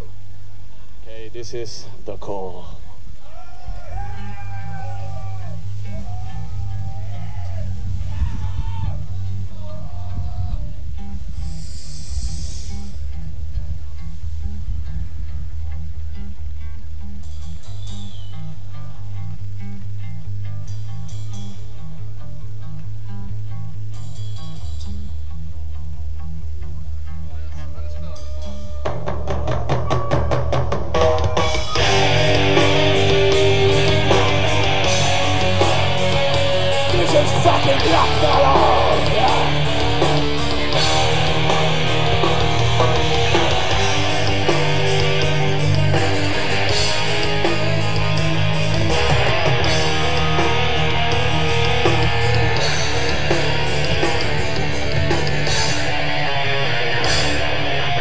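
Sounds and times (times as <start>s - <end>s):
drums: 0.0s - 25.4s, 26.8s - 58.0s
distorted electric guitars: 0.0s - 58.0s
crowd shouting: 3.2s - 11.1s, 27.3s - 58.0s
low droning intro: 30.9s - 58.0s.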